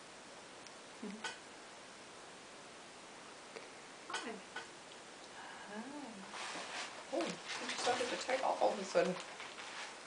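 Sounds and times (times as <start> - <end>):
person speaking softly: 1.0 - 1.4.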